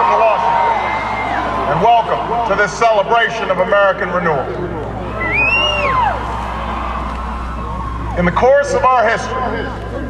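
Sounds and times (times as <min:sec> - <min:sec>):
large crowd cheering: 0:00.0 - 0:10.0
person whooping: 0:05.2 - 0:06.8.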